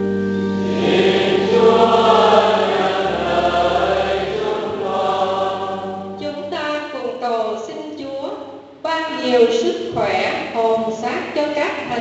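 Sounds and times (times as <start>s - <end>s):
choir and congregation singing: 0.5s - 6.3s.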